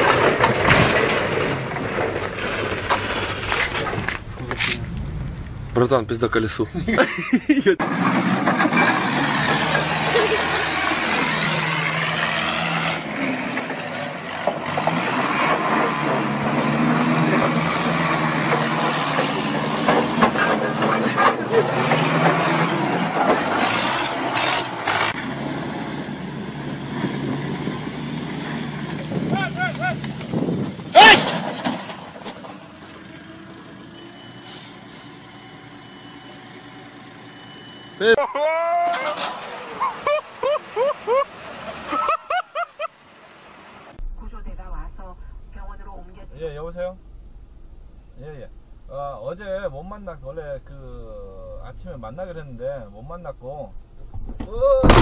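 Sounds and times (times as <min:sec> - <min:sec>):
forklift engines revving: 0:04.4 - 0:44.0
sharp loud crash: 0:30.9 - 0:32.6, 0:54.2 - 0:55.0.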